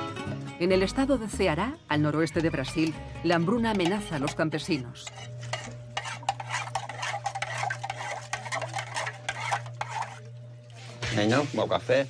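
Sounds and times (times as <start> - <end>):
metal spoon scraping metal pot: 2.7 - 10.3
steady low hum: 3.0 - 11.8.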